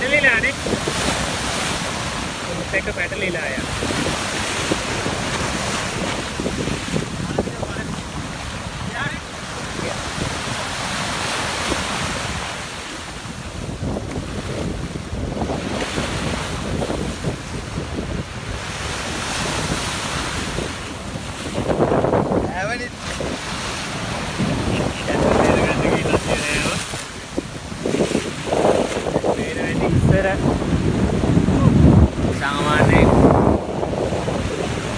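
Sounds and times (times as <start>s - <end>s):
waves breaking against seawall: 0.0s - 34.9s
wind buffeting microphone: 0.0s - 34.9s.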